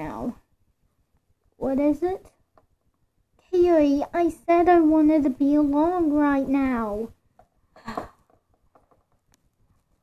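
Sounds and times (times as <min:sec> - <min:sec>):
plastic figures tapping on wooden floor: 0:07.4 - 0:09.4.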